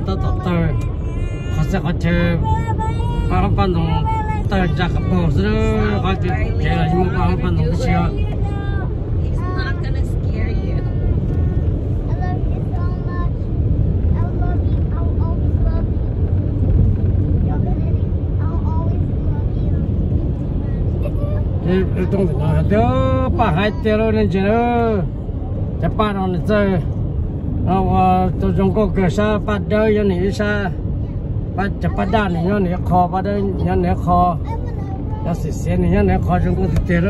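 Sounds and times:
car engine and tyres rumbling: 0:00.0 - 0:37.0.

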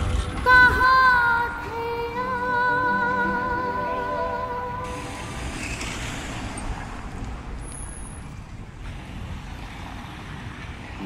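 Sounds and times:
passing vehicles rumble and hiss: 0:00.0 - 0:11.0.

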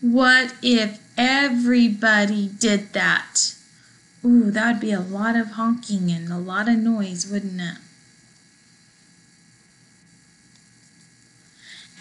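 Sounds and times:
faint steady hiss: 0:00.0 - 0:12.0
faint steady tones: 0:00.0 - 0:12.0.

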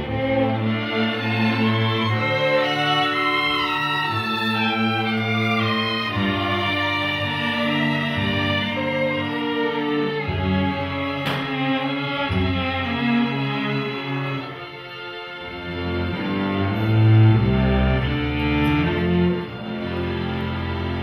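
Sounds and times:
string orchestra playing bowed notes: 0:00.0 - 0:21.0.

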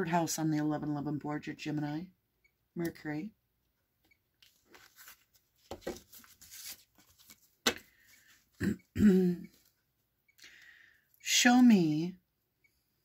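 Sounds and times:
cards rustling and clicking: 0:04.4 - 0:08.5
person clearing throat: 0:08.6 - 0:09.5.

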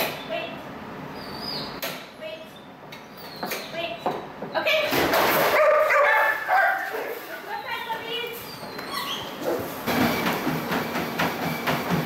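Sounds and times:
dogs yipping and barking: 0:05.5 - 0:07.8, 0:08.4 - 0:09.8.

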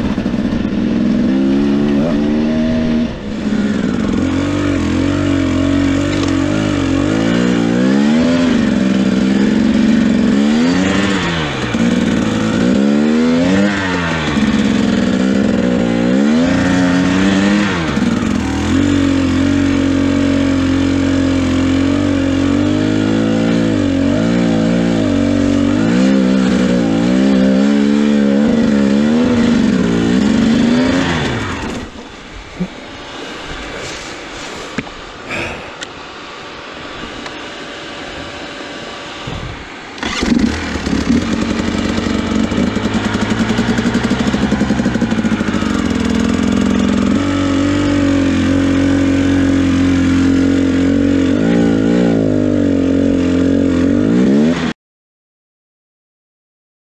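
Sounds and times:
motorcycle engine revving: 0:00.0 - 0:54.8.

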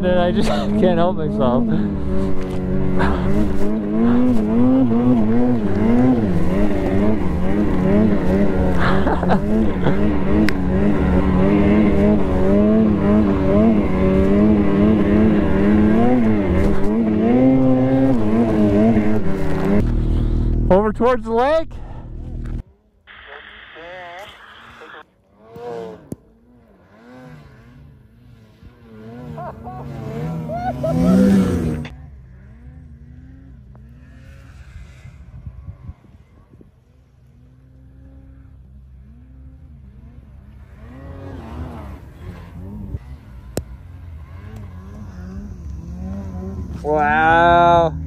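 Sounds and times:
snowmobile engines revving: 0:00.0 - 0:48.0.

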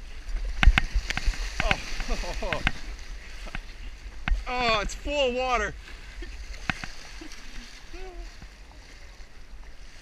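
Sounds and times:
water rushing around a kayak: 0:00.0 - 0:10.0.

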